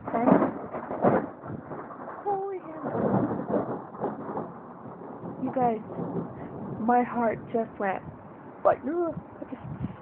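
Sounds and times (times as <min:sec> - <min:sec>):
thunder clap: 0:00.0 - 0:10.0.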